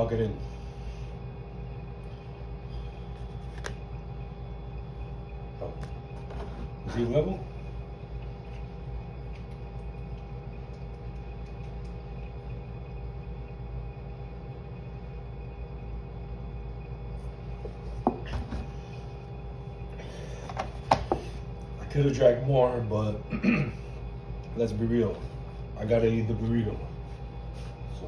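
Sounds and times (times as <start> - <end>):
steady room hum: 0.0 - 28.0.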